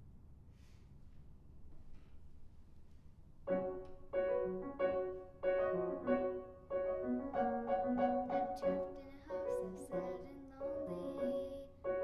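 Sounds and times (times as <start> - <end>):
grand piano chords: 3.4 - 12.0.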